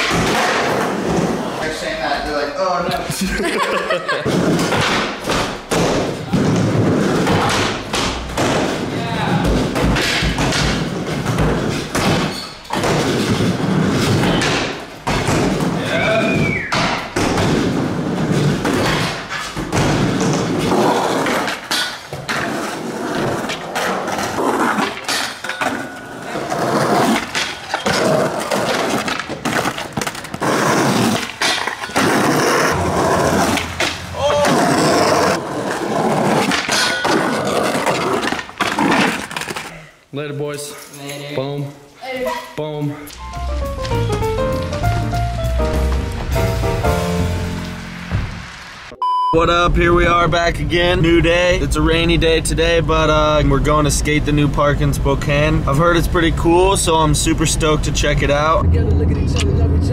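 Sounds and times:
skateboards popping and landing: 0:00.0 - 0:01.7, 0:04.2 - 0:39.8
skateboard wheels rolling: 0:17.3 - 0:39.7
skateboard grinding metal rail: 0:20.5 - 0:39.5.

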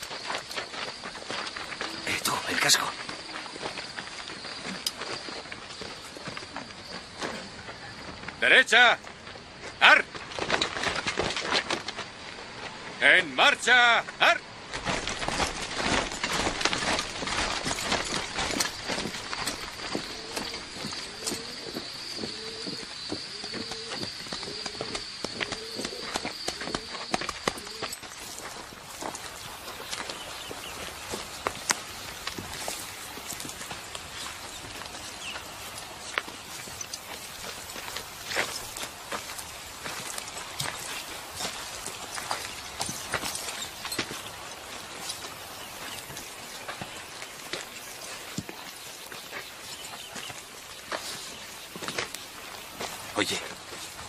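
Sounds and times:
marching footsteps: 0:00.0 - 0:13.0, 0:13.6 - 0:54.0.

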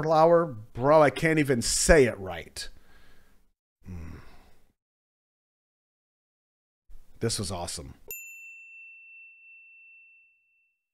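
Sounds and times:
bright bell ding: 0:08.1 - 0:10.9.

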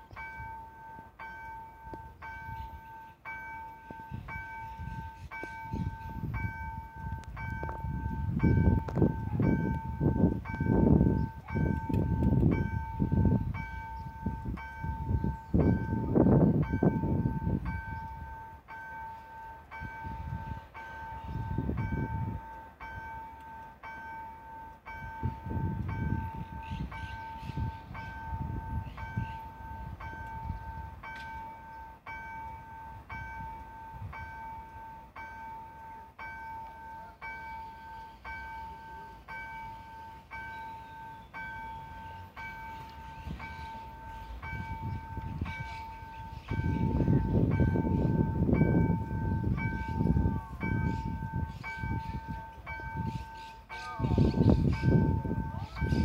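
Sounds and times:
level crossing bell ringing: 0:00.0 - 0:56.0.

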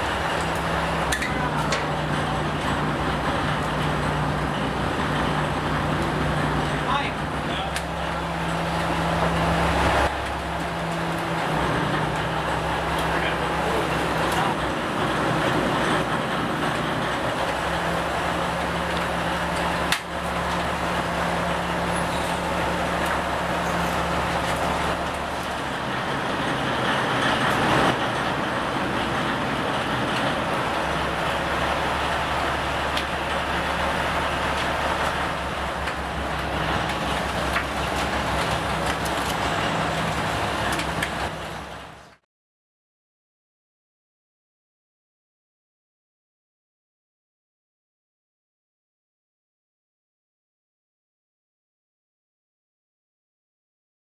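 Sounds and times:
boat engine drone: 0:00.0 - 0:42.2.

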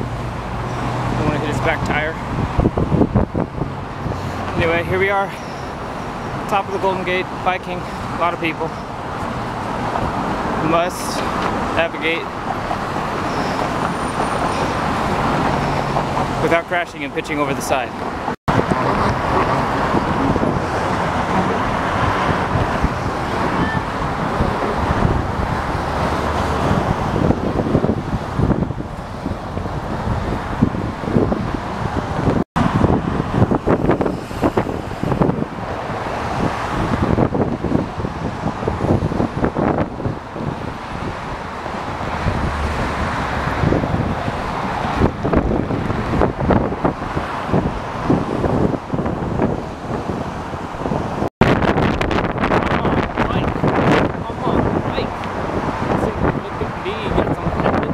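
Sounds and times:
passing car traffic: 0:00.0 - 0:57.9
wind buffeting microphone: 0:00.0 - 0:57.9.

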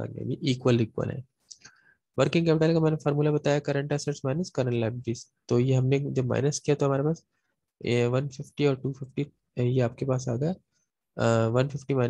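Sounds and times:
man lecturing: 0:00.0 - 0:07.2, 0:07.8 - 0:10.6, 0:11.2 - 0:12.0.

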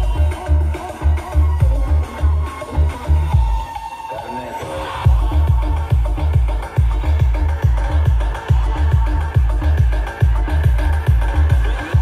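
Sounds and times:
loud dance music with pounding bass: 0:00.0 - 0:12.0.

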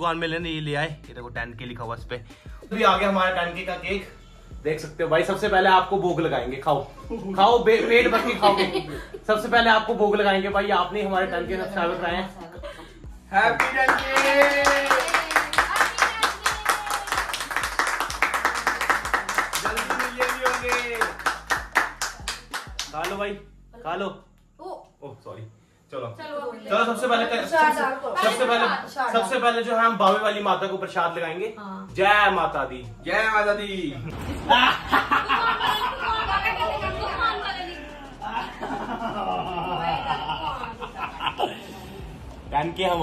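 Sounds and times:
people clapping: 0:13.5 - 0:23.3.

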